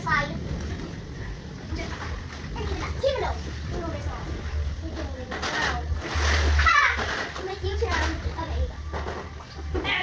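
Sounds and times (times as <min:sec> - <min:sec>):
water splashing in paddling pool: 0:00.0 - 0:10.0.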